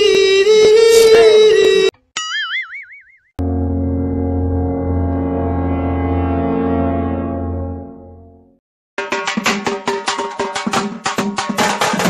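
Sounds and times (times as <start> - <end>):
cartoon boing: 2.2 - 3.3
low held tone: 3.4 - 8.4.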